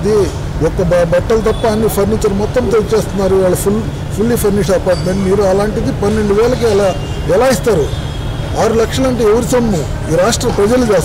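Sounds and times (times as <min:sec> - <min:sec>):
man speaking into microphone: 0:00.0 - 0:07.9, 0:08.5 - 0:11.0.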